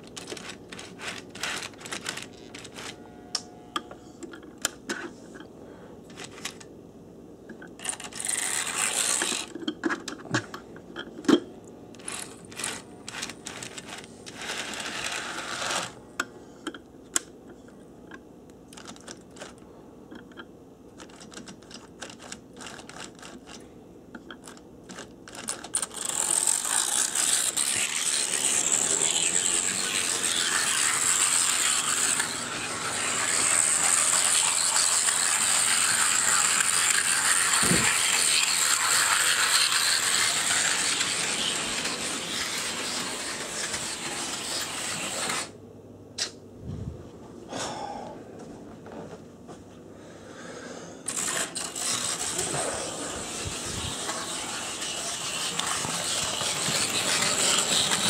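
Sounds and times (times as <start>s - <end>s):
model locomotive motor whirring: 0.0s - 4.0s, 7.8s - 9.6s, 11.9s - 16.0s, 25.3s - 45.5s, 51.1s - 58.0s.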